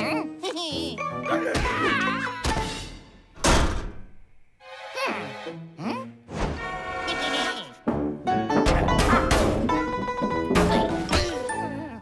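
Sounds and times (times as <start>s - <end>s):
cartoon door thunk: 3.4s - 4.1s.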